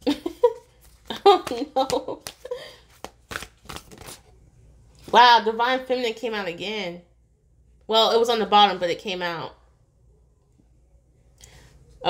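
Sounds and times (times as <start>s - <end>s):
cards being shuffled: 0.6s - 4.3s.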